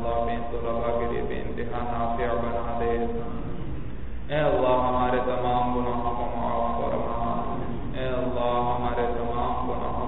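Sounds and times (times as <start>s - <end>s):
man chanting a prayer: 0.0s - 3.5s, 4.3s - 10.0s.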